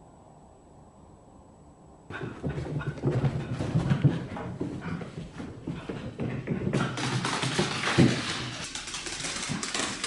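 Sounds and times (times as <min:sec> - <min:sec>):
dog paws thumping on carpeted stairs: 0:02.1 - 0:10.0.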